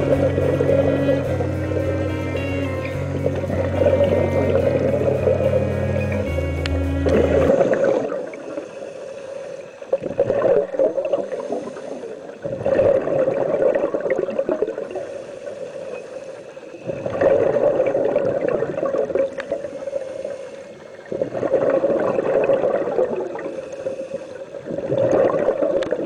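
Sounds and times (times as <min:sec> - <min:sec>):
air bubbling underwater: 0:00.0 - 0:08.5, 0:24.7 - 0:26.0.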